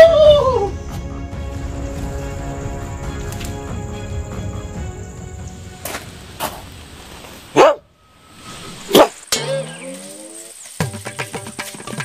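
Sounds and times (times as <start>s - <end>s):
dog barking: 7.5s - 7.9s, 8.9s - 9.2s.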